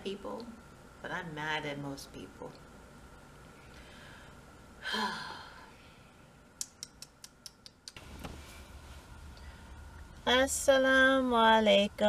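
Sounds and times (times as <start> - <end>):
woman sighing: 4.8 - 5.7.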